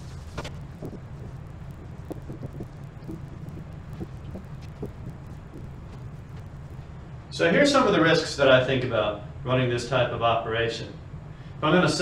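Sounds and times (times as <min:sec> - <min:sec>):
steady low hum: 0:00.0 - 0:12.0
marker squeaking on whiteboard: 0:00.1 - 0:06.5.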